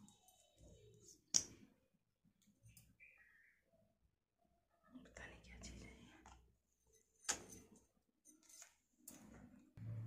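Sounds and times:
faint whispering voice: 4.7 - 6.5.

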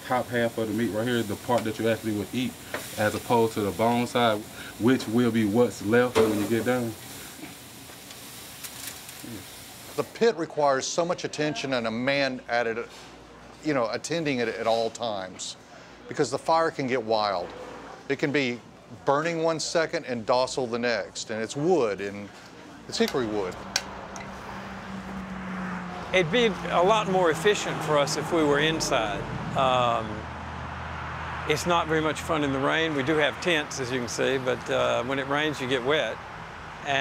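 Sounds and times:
meat sizzling over fire: 0.0 - 10.2
car approaching: 23.0 - 37.0.

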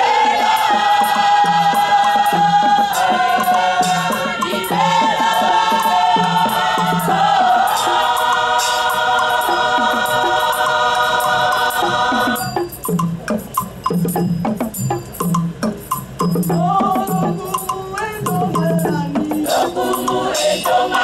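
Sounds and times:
women's choir singing: 0.0 - 12.6, 16.5 - 21.0.

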